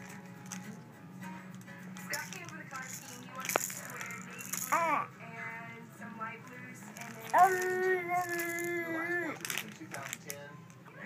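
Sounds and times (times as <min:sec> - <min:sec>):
plastic toy keys rattling: 0:00.0 - 0:00.8, 0:01.6 - 0:05.0, 0:06.9 - 0:10.5
baby squealing: 0:07.3 - 0:09.4.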